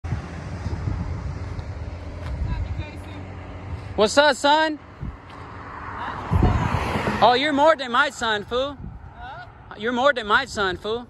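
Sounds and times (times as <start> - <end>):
wind on microphone: 0.0 - 4.0, 4.9 - 11.0
road traffic: 0.0 - 11.0.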